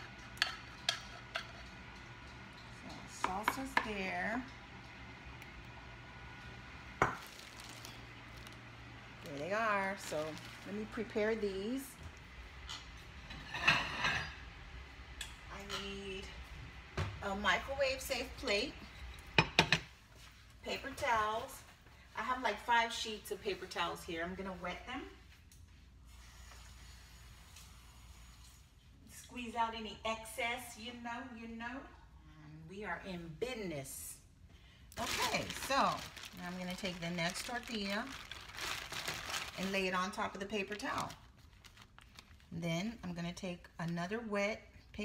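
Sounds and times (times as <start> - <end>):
faint low room hum: 0.0 - 45.0.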